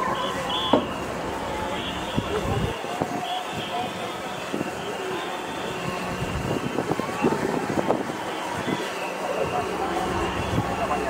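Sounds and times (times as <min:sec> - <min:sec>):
distant crowd noise: 0:00.0 - 0:11.0.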